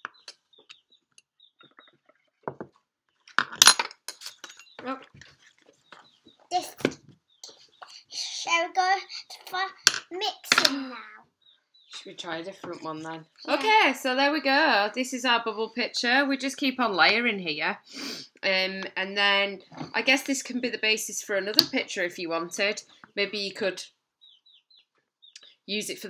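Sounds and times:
young child's voice: 6.5 - 6.9, 7.9 - 11.3.

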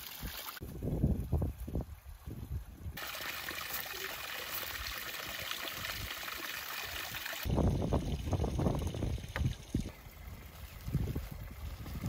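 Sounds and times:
water pouring and splashing: 0.0 - 0.8, 1.4 - 12.0
wind rumble on microphone: 0.6 - 3.0, 7.4 - 12.0.

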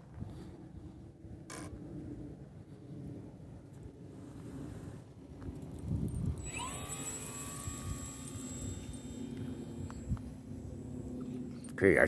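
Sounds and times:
wind rumble on microphone: 0.0 - 12.0
model airplane motor whining: 5.6 - 11.8.

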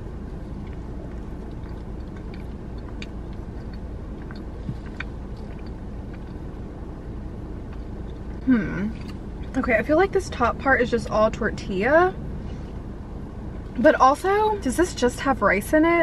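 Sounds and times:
quiet chewing: 0.0 - 9.6
low car cabin rumble: 0.0 - 16.0.

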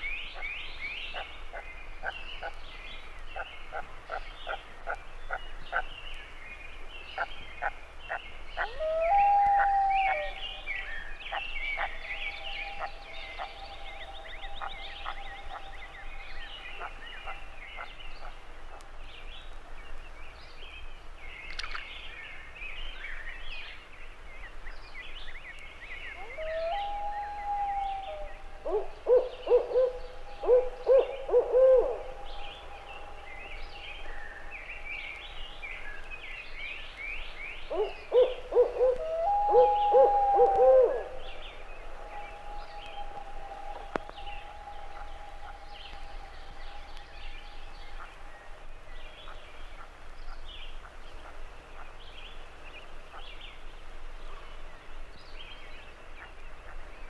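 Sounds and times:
loons wailing and yodeling: 8.6 - 17.5, 26.2 - 36.0, 37.7 - 48.6
chorus of small high calls: 37.8 - 48.6.

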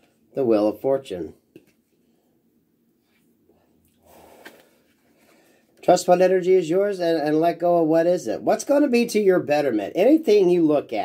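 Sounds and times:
soft breath smoking: 1.9 - 5.8.

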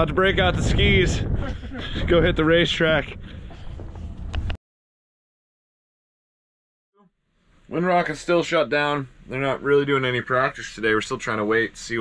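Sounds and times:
wind rumble on microphone: 0.0 - 4.6.

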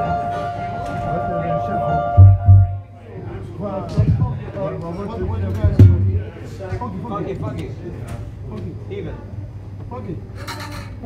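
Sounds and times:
held musical chord: 0.0 - 3.0
room chatter: 0.0 - 11.0
sharp knock: 2.2 - 2.8, 5.4 - 6.4
loud low thumps: 2.2 - 2.9, 5.2 - 6.5.

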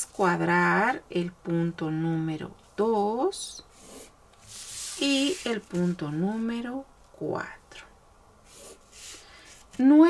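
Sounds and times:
woman speaking: 0.0 - 3.7, 5.0 - 7.9, 9.8 - 10.0
marker swishing on paper: 3.7 - 6.0, 8.5 - 9.7.

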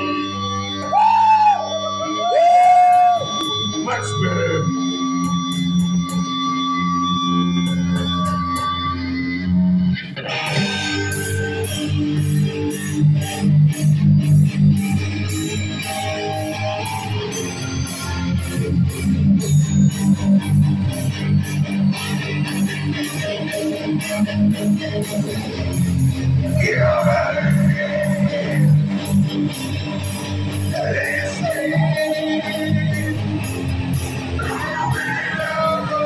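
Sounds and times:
amplified electric guitar: 0.0 - 36.0.

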